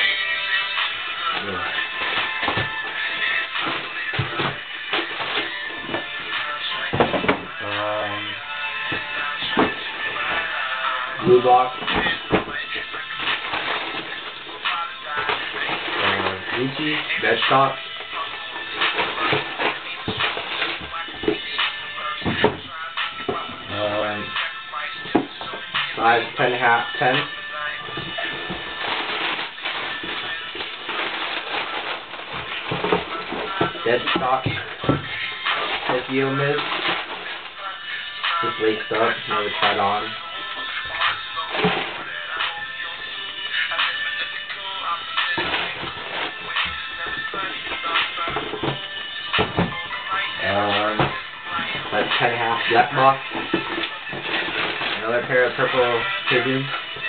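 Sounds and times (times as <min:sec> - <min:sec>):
cardboard box and tissue rustling: 0:00.0 - 0:24.3, 0:24.9 - 0:57.0
background music with vocals: 0:00.0 - 0:57.0.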